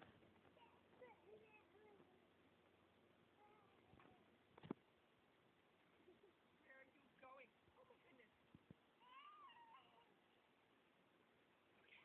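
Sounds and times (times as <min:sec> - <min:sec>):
toddler whining: 0:09.0 - 0:10.2.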